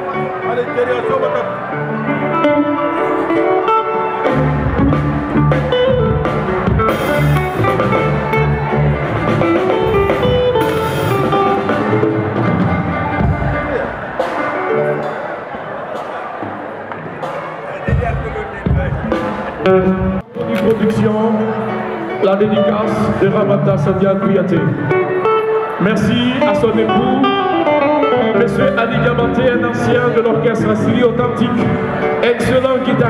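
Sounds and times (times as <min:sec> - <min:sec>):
electric guitars: 0:00.0 - 0:16.5, 0:17.2 - 0:33.0
bass line: 0:01.6 - 0:15.0.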